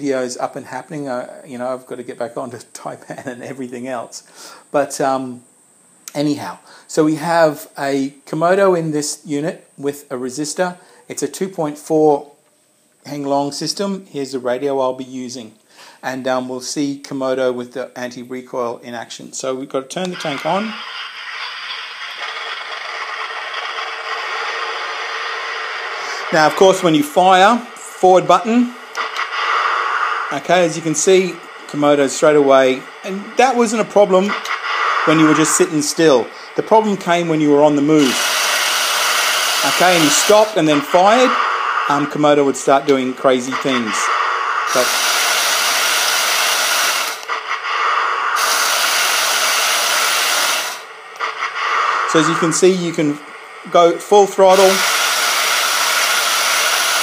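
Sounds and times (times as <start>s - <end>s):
electric motors and gearboxes whirring: 20.1s - 27.5s, 48.0s - 52.7s
simulated tank engine through speaker: 30.3s - 38.2s, 39.6s - 45.2s, 52.1s - 55.1s.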